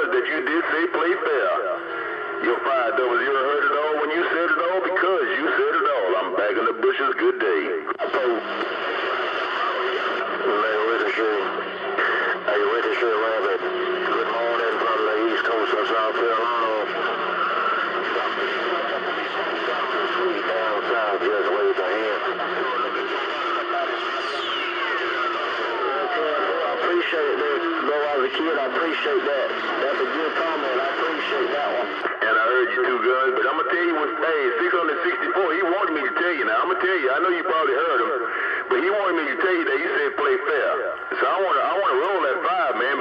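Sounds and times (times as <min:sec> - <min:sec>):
radio static: 0:00.0 - 0:43.0
radio voices: 0:00.0 - 0:43.0.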